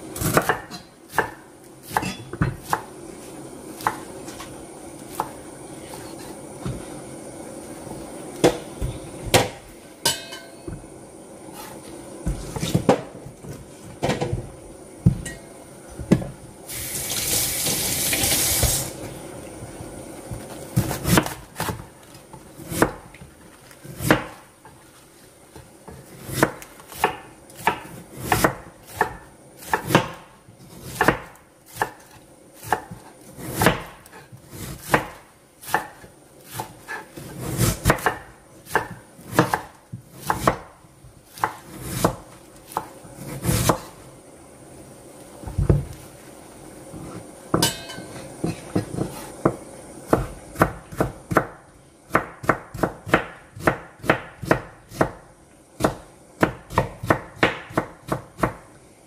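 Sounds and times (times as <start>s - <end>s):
hiss: 16.6s - 19.1s.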